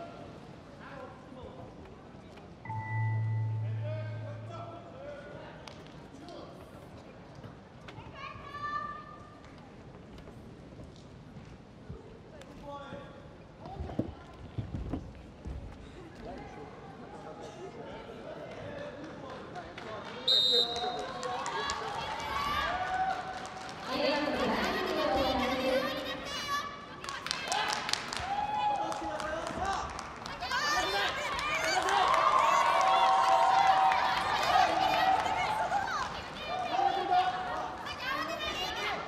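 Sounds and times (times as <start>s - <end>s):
referee's whistle: 20.2s - 21.0s.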